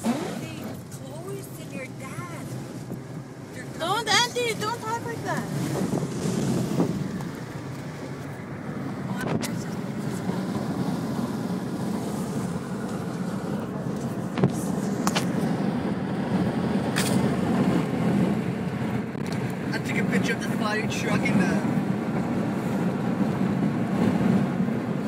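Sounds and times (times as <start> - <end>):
road and engine rumble: 0.0 - 25.0.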